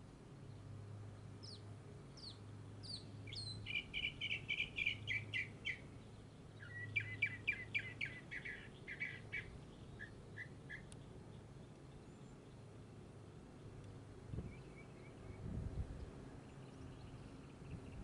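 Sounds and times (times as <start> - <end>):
songbird whistling and chirping: 1.4 - 11.1, 14.4 - 15.5.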